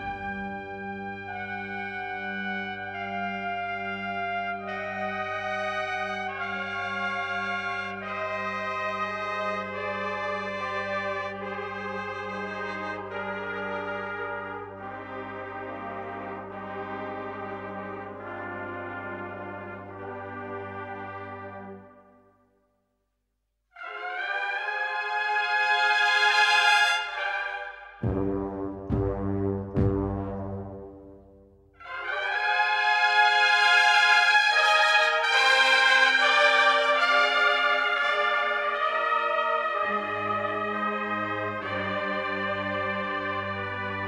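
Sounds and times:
brass band playing slow march: 0.0s - 22.0s, 23.8s - 44.0s.

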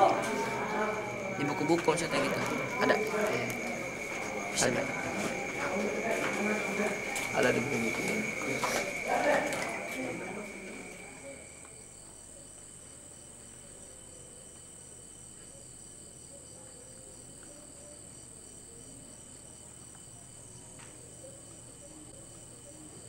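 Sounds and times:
insects chirping: 0.0s - 23.0s.

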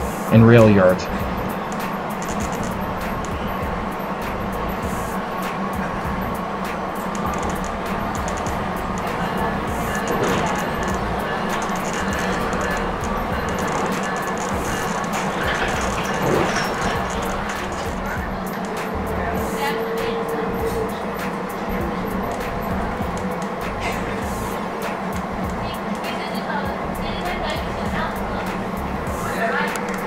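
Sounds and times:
train wheels rumbling on track: 0.0s - 30.0s
faint clicks: 1.6s - 3.4s, 6.9s - 19.0s, 29.7s - 30.0s.

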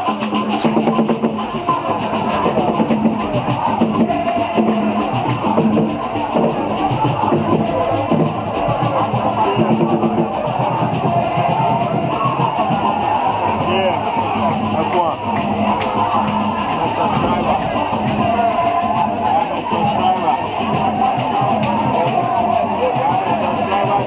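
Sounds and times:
crowd singing and calling: 0.0s - 24.0s
drums beating: 0.0s - 24.0s.

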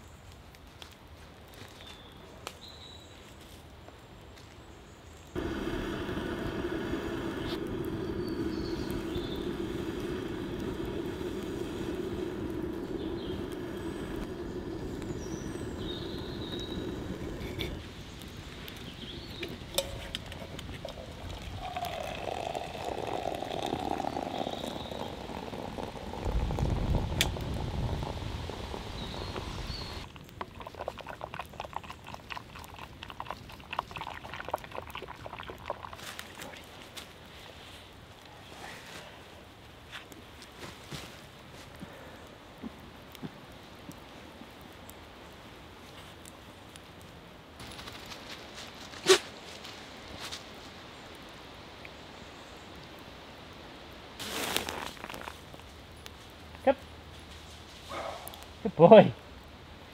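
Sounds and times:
kettle humming over campfire: 5.3s - 37.1s, 54.2s - 56.9s
water pouring into a mug: 5.4s - 17.8s, 19.7s - 36.5s.

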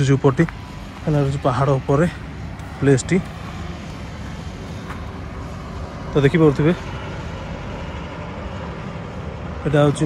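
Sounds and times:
road traffic rumble: 0.0s - 10.0s
vehicle engine running: 0.0s - 10.0s.

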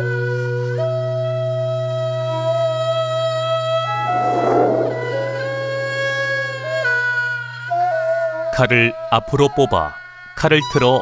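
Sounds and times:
wind instrument holding slow notes: 3.8s - 6.1s
breathy rush of noise: 3.9s - 5.9s
steady low hum: 3.9s - 5.9s.

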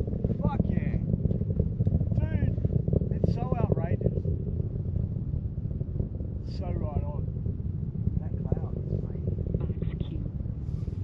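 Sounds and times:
distant rocket engines rumbling: 0.0s - 11.0s.

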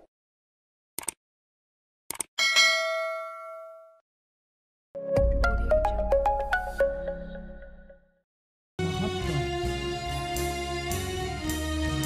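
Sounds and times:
short clicks: 1.0s - 1.2s
metallic bell ding: 2.4s - 4.0s.

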